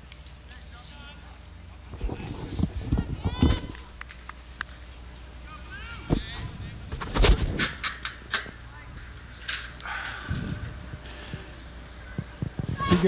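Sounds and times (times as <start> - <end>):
low steady hum: 0.0 - 13.0
people shouting calls: 3.0 - 4.0, 5.4 - 6.9, 12.0 - 13.0.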